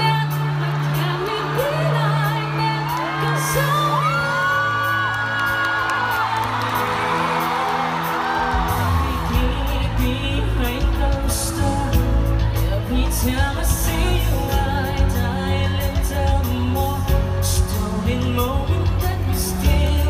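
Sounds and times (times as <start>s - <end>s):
live pop ballad with band: 0.0s - 20.0s
audience whooping: 0.2s - 10.8s
man singing: 8.6s - 20.0s.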